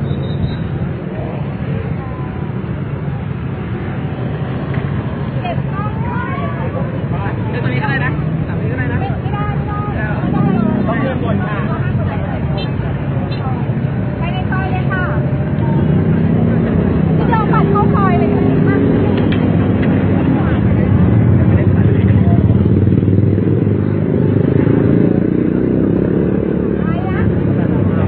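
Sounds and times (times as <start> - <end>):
crowd voices: 0.0 - 28.0
motorbikes and cars passing: 0.0 - 28.0.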